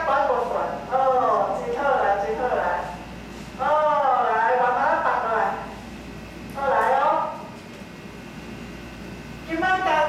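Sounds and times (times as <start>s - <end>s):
person speaking: 0.0s - 5.9s, 6.5s - 7.6s
low room noise in a hall: 0.0s - 10.0s.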